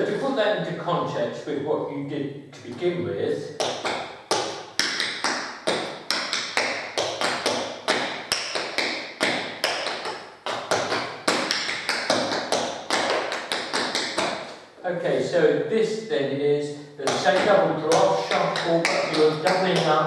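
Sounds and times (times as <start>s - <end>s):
tap shoes clicking on tiled floor: 3.6s - 14.6s, 17.1s - 20.0s.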